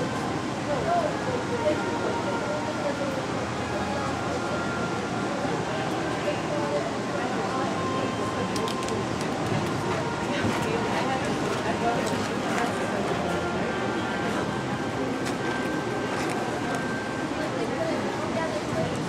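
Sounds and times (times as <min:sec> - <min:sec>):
hubbub of indistinct voices: 0:00.0 - 0:19.0.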